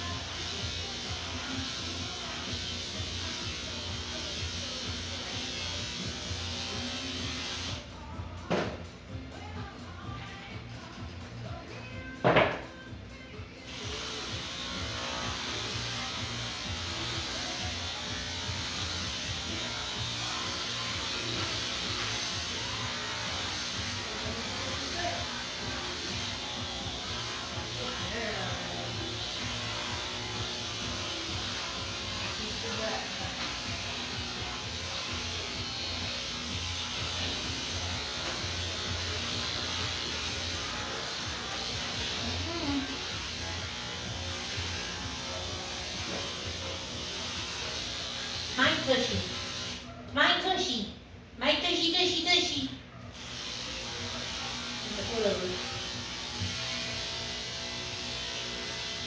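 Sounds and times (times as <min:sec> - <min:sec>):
electric clippers buzzing: 0:00.0 - 0:07.8, 0:13.6 - 0:49.9, 0:53.1 - 0:59.0
faint background music: 0:00.0 - 0:59.0.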